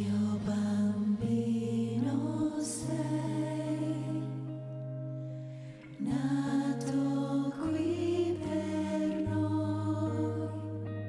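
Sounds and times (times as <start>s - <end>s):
women singing in harmony: 0.0s - 4.8s, 5.9s - 11.0s.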